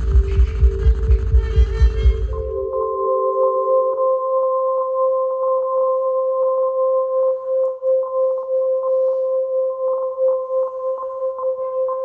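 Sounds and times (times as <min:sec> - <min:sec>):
steady pure horn tone: 0:00.0 - 0:04.1
high pulsing tone: 0:00.0 - 0:04.5
lower tones: 0:00.0 - 0:12.0.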